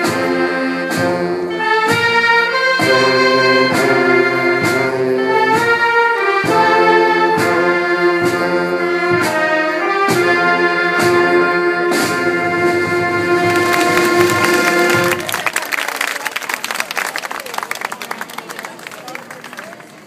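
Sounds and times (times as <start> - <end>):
wind band playing: 0.0 - 19.8
bass drum beat: 12.2 - 15.2
applause: 13.4 - 20.0.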